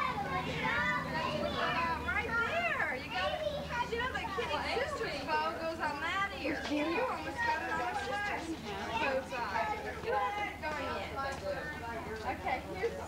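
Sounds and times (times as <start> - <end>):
children chattering and calling out: 0.0 - 13.0.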